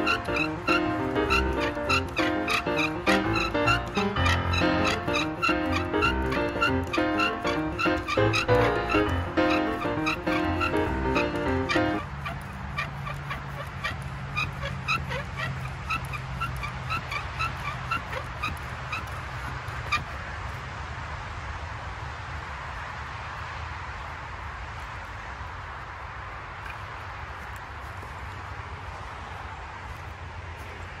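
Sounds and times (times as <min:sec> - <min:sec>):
wooden spindle squeaking: 0:00.0 - 0:20.2.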